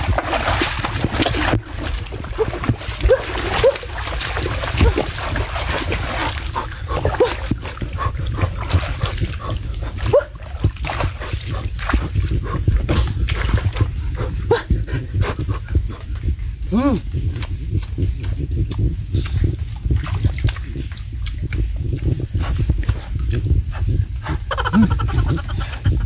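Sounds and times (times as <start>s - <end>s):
hands splashing in muddy water: 0.0s - 14.0s.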